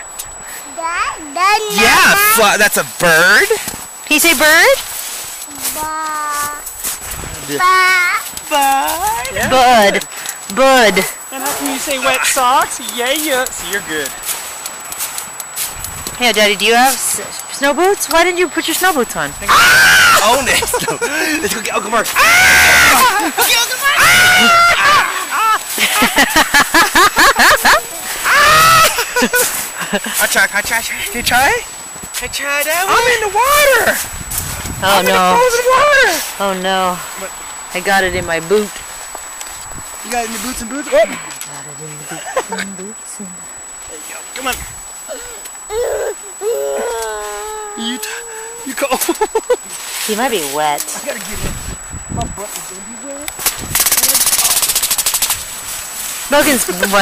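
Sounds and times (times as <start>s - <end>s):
man laughing: 20.2s - 30.4s, 42.0s - 42.8s, 45.1s - 49.8s
rapid rattle of sharp clicks: 53.4s - 55.4s.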